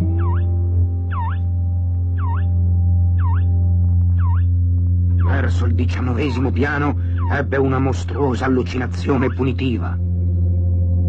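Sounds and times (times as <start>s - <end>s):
low drone: 0.0s - 11.0s.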